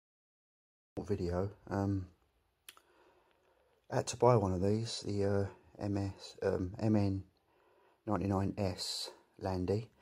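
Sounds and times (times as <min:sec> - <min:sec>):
man talking: 0:01.0 - 0:02.2, 0:03.9 - 0:07.4, 0:08.0 - 0:10.0.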